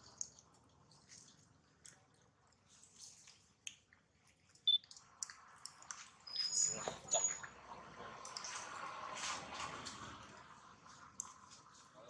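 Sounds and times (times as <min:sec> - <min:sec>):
wet sucking and clicking: 0:00.0 - 0:07.4.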